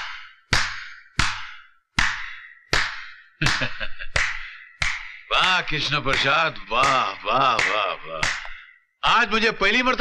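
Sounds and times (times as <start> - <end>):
slow hand claps with echo: 2.0 - 8.7.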